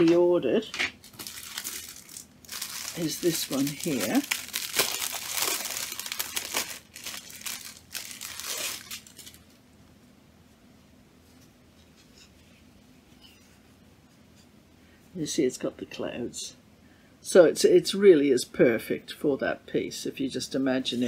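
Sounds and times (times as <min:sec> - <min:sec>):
stiff fabric crinkling and rustling: 0:00.0 - 0:09.5.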